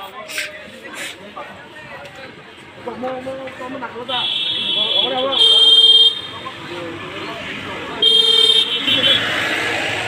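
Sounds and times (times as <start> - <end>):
vehicle horn honking: 4.2 - 6.3, 8.0 - 9.3.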